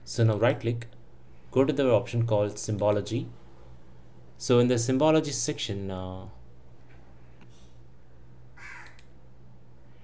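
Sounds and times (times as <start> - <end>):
steady low hum: 0.0 - 10.0
faint click: 8.8 - 9.2.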